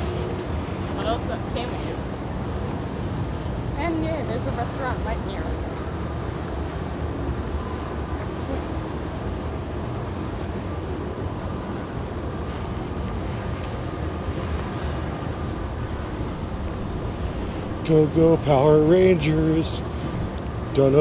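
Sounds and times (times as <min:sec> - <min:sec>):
city street rumble: 0:00.0 - 0:21.0.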